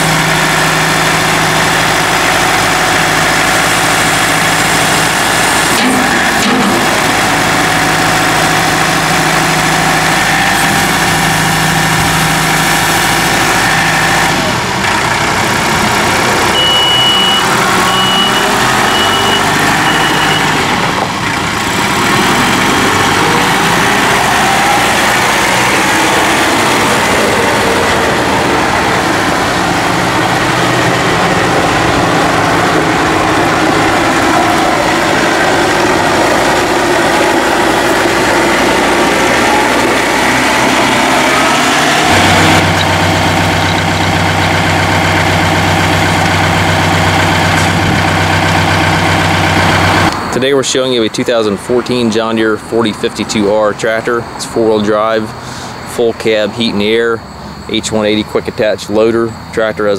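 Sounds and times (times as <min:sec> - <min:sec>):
tractor diesel engine running: 0:00.0 - 0:59.9.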